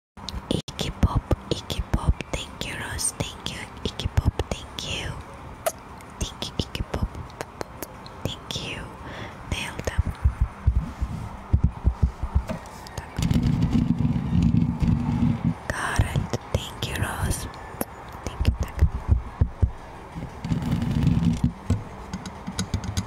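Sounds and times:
mouth clicks and lip sounds: 0.2 - 8.8, 9.6 - 10.9, 15.7 - 19.7
whispering into a microphone: 0.4 - 5.3, 6.2 - 10.2, 12.8 - 13.4, 15.7 - 17.5, 18.2 - 18.9.

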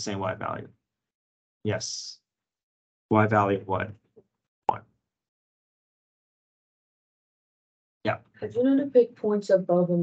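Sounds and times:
man speaking a word: 0.0 - 0.6, 1.7 - 2.1, 3.1 - 3.9.

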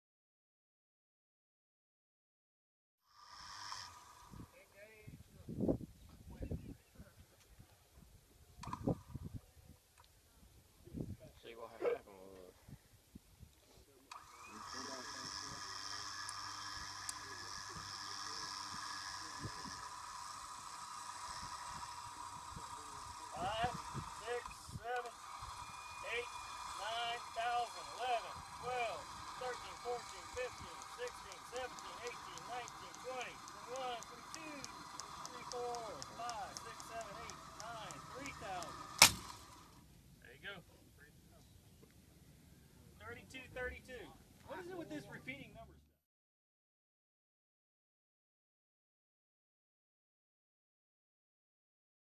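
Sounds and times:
winch running: 3.2 - 4.5, 14.1 - 39.8
sharp crack: 38.8 - 39.5.

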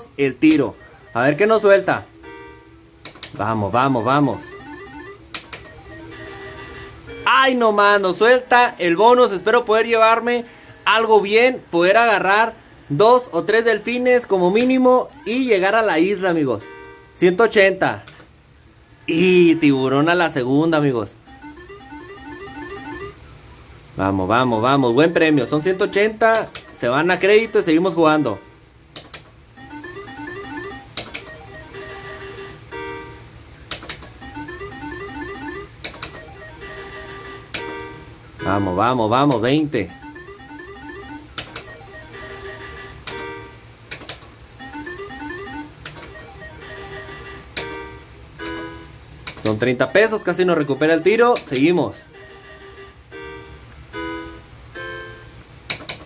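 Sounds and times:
slot machine chiming tones: 0.0 - 2.8, 3.4 - 10.3, 13.2 - 17.6, 19.1 - 23.2, 24.2 - 28.6, 29.6 - 33.3, 34.1 - 43.6, 44.6 - 49.0, 49.6 - 55.4
slot machine beeps: 0.0 - 10.3, 13.0 - 17.8, 19.1 - 20.4, 21.2 - 23.4, 24.2 - 28.6, 29.6 - 33.3, 34.0 - 43.6, 44.6 - 55.4
low steady hum: 0.0 - 56.0
sharp click: 3.0 - 3.4, 29.0 - 29.3, 33.7 - 34.1, 43.9 - 44.3, 48.4 - 49.5, 55.7 - 56.0.

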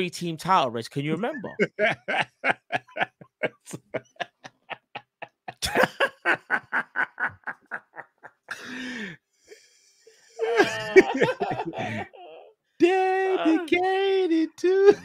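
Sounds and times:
men laughing hard: 1.3 - 9.1, 10.4 - 12.4.

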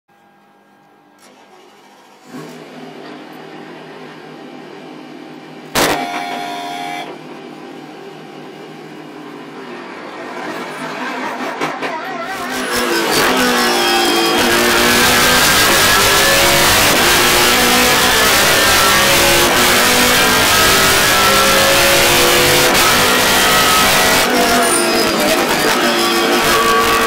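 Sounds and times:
loud engine burst: 5.7 - 7.1, 10.2 - 27.0.

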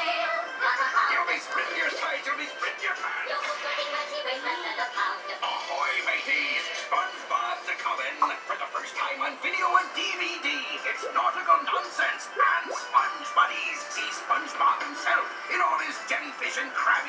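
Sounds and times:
music from tv speaker: 0.0 - 17.0.

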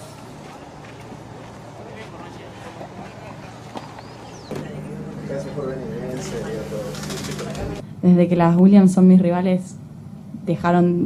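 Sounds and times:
low outdoor hum: 0.0 - 11.0
indistinct voices: 0.5 - 11.0.

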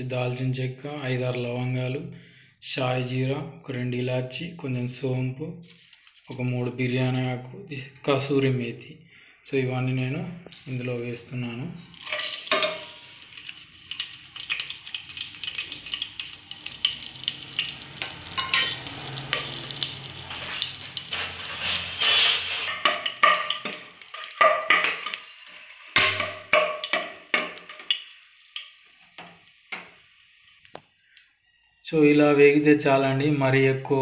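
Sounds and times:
spices sizzling in hot oil: 10.5 - 31.6.

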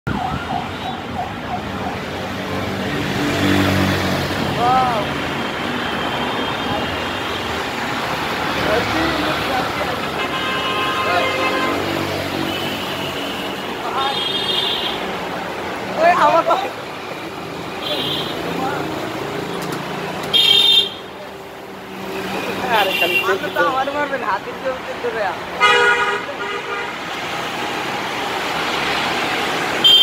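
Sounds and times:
busy road traffic: 0.0 - 30.0
siren whooping: 0.1 - 2.0.

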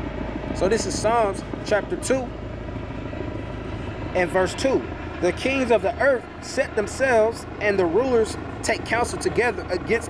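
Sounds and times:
distant engine rumble: 0.0 - 10.0.

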